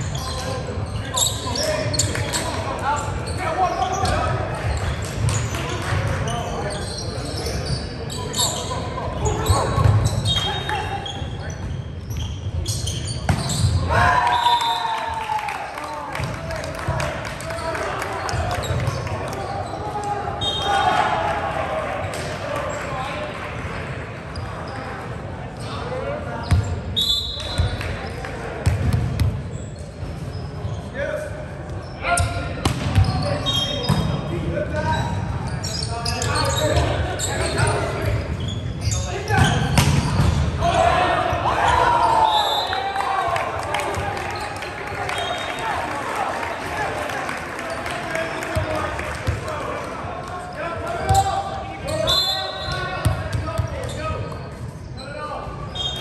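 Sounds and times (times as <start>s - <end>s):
players shouting: 17.4s - 22.7s, 39.1s - 53.5s.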